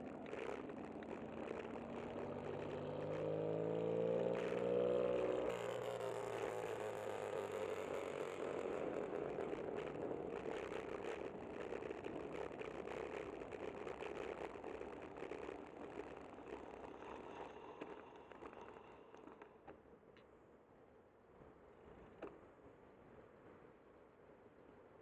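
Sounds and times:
road and wind noise: 0.0 - 25.0.

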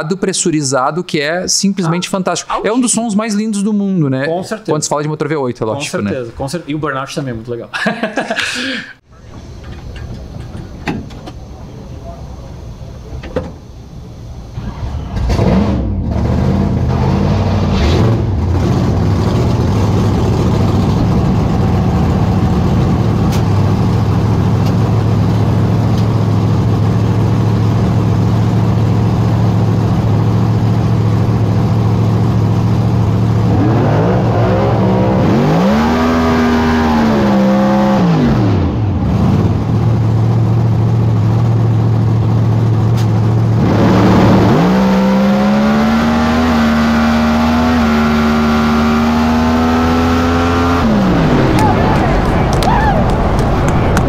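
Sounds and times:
engine revving: 14.5 - 54.0
drag car engine idling loudly: 18.7 - 33.6, 38.9 - 43.6.

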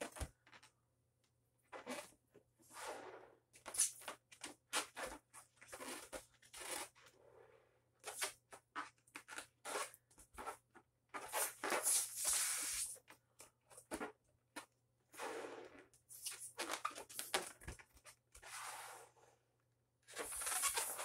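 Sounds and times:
rubber balloon crackling: 1.7 - 7.0, 8.0 - 13.0, 15.1 - 18.5, 20.1 - 21.0
breaths blowing up balloon: 20.1 - 21.0.

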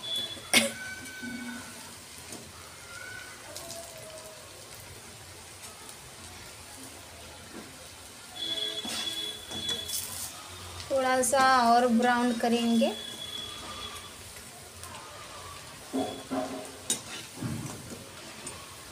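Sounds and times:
dumplings sizzling in hot oil: 0.0 - 18.9.

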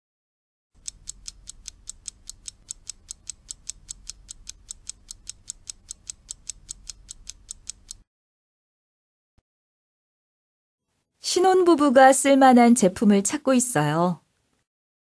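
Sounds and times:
clock ticking: 0.8 - 8.1.

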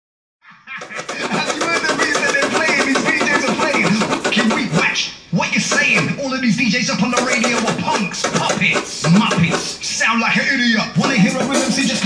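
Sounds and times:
turntable scratching: 0.6 - 12.0
hip hop music: 0.8 - 12.0.

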